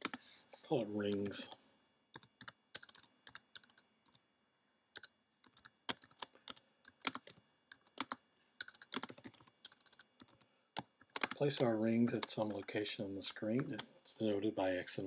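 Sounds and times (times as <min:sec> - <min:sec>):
computer keyboard typing: 0:00.0 - 0:00.2, 0:01.0 - 0:01.5, 0:02.1 - 0:04.2, 0:05.0 - 0:13.9.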